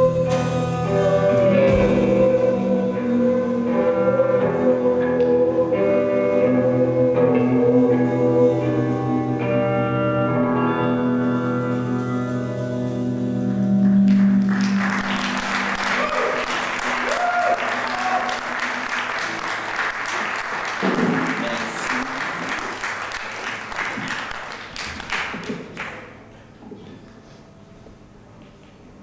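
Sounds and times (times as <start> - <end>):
audience applauding: 13.8 - 26.2.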